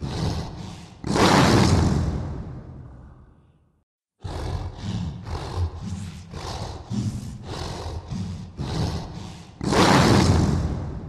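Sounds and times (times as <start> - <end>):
heavy growling breaths: 0.0 - 1.2, 4.2 - 11.0
roaring breath: 0.0 - 11.0.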